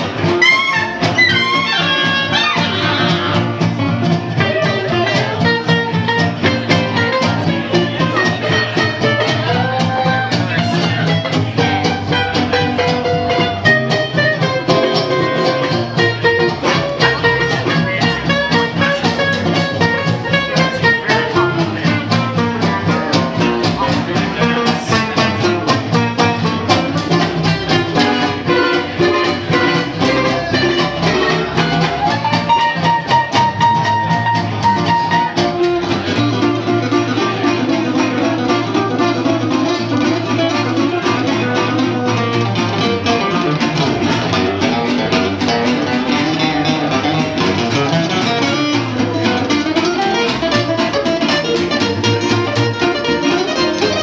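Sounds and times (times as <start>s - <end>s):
jazz band playing: 0.0s - 54.0s.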